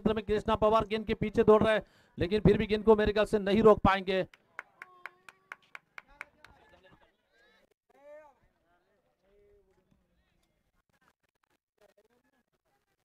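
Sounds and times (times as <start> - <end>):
faint claps: 4.3 - 7.0.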